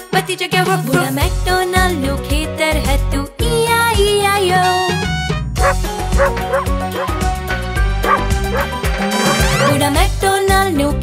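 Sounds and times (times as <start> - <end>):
upbeat children's music: 0.0 - 11.0
cartoon puppy yapping: 5.6 - 7.2, 8.1 - 8.7.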